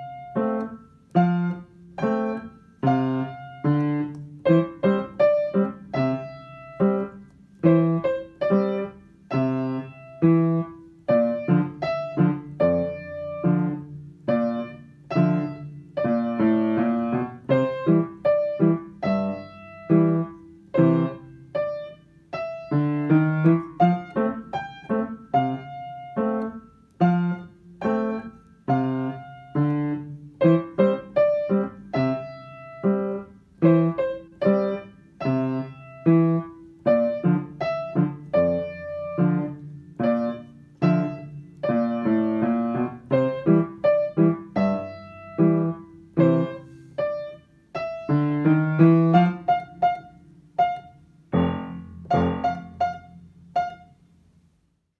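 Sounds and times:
piano playing a tune: 0:00.0 - 0:54.5.

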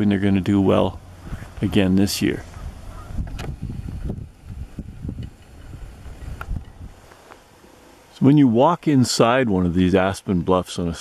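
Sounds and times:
wind buffeting microphone: 0:00.0 - 0:07.1.

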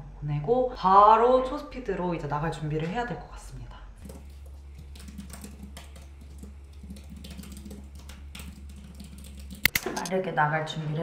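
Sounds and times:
low steady hum: 0:00.0 - 0:11.0
computer keyboard typing: 0:04.0 - 0:10.1.

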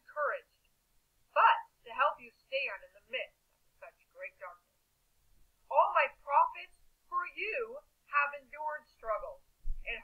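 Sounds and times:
woman speaking over a phone line: 0:01.3 - 0:04.6, 0:05.7 - 0:10.0.

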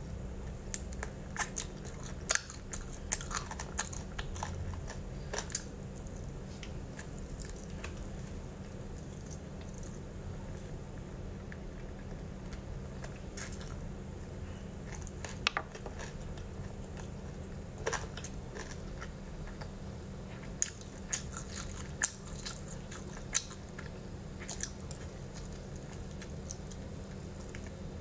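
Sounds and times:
steady low hum: 0:00.0 - 0:28.0
crunchy clicks and smacks: 0:00.4 - 0:10.1, 0:10.9 - 0:13.8, 0:14.9 - 0:19.8, 0:20.4 - 0:28.0
person chewing sticky meat: 0:00.4 - 0:28.0.

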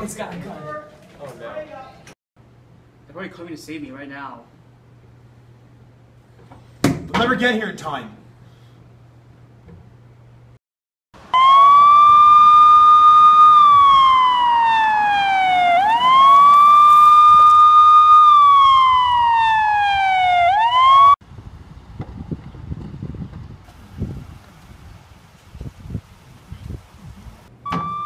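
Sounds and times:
police siren wailing: 0:11.3 - 0:21.2.

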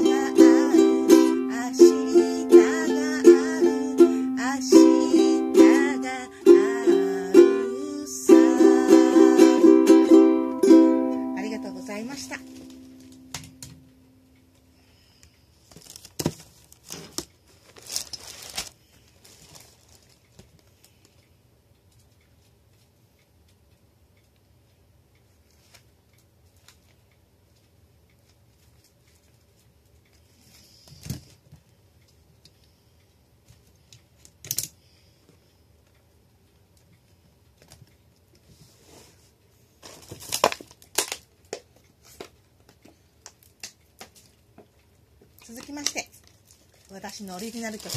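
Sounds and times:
paper rustling: 0:15.7 - 0:20.7.

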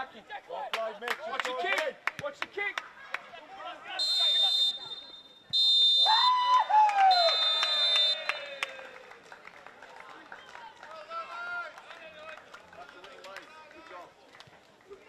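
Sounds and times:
voices of players and spectators: 0:00.0 - 0:15.0
referee's whistle blast: 0:04.0 - 0:08.6.

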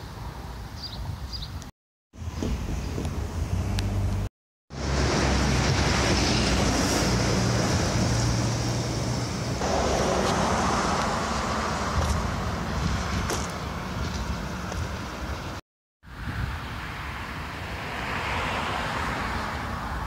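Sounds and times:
wind rushing on microphone: 0:00.7 - 0:20.0.

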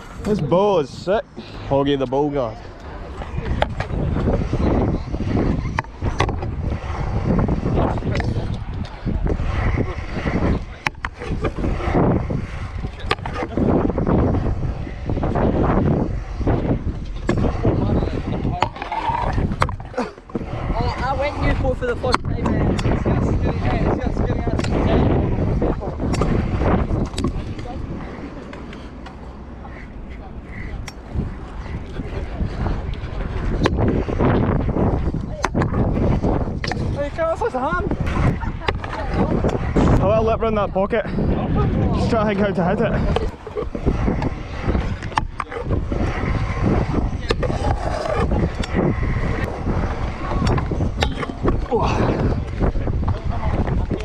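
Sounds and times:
scooter wheels rolling on concrete: 0:00.0 - 0:54.0
voices: 0:00.0 - 0:54.0
wind buffeting microphone: 0:00.0 - 0:54.0.

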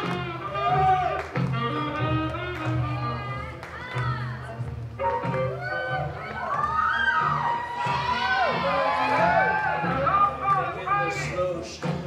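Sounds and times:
slow swing music: 0:00.0 - 0:12.0
spectators cheering and whooping: 0:00.4 - 0:01.2, 0:05.0 - 0:10.4.

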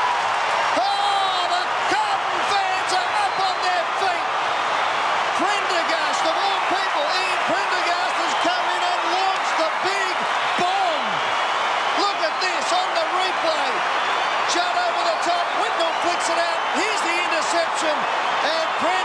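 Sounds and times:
scattered clapping: 0:00.0 - 0:19.0
stadium crowd roaring: 0:00.0 - 0:19.0
yells and whoops: 0:00.0 - 0:19.0.

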